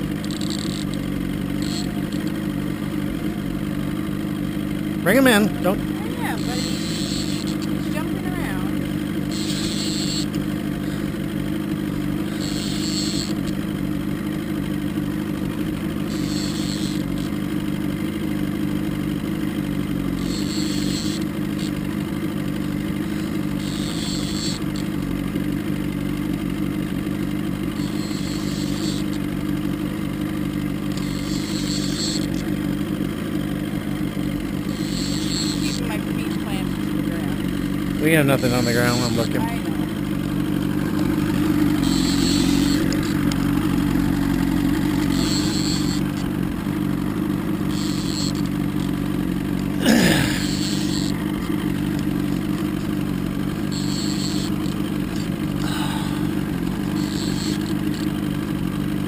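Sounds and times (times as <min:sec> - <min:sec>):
outboard motor droning: 0:00.0 - 0:59.0.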